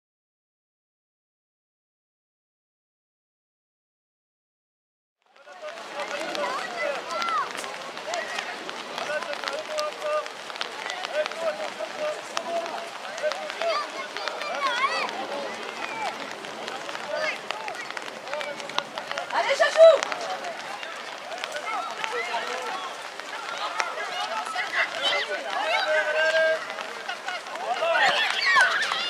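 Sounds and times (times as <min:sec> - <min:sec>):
children shouting: 0:05.8 - 0:09.1, 0:10.7 - 0:29.0.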